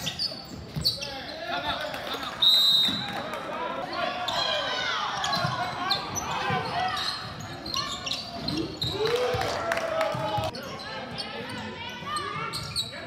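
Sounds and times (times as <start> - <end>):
players and spectators voices: 0.0 - 13.0
referee whistle: 2.4 - 3.2.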